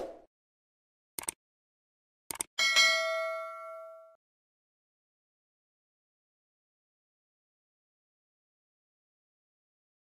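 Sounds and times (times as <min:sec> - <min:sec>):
notification bell chime: 0:02.6 - 0:04.2.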